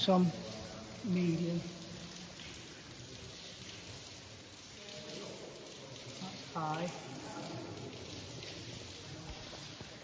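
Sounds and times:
water dripping and trickling: 0.0 - 10.0.

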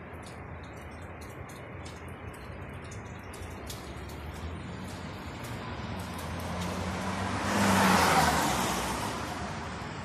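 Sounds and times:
car passing by: 4.1 - 10.0.

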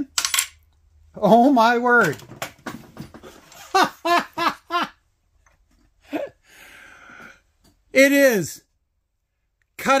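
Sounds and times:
man laughing: 3.5 - 5.0, 6.0 - 6.4.

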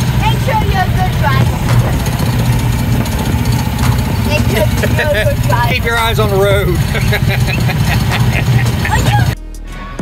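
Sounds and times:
small engine droning: 0.0 - 9.4.

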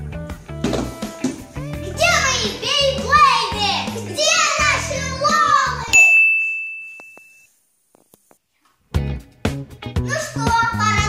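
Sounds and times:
background music: 0.0 - 6.0, 8.9 - 11.0
children's voices: 1.6 - 6.0, 10.1 - 11.0
bright bell-like ding: 6.0 - 7.5.

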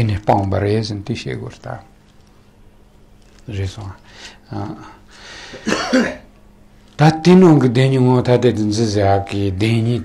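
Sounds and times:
breathy intake of air: 4.0 - 4.4, 5.1 - 5.7
man coughing: 5.5 - 6.3.

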